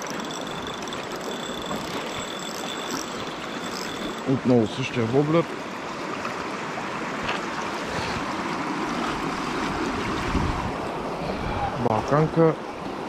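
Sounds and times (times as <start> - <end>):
wind rumble on microphone: 9.2 - 12.2.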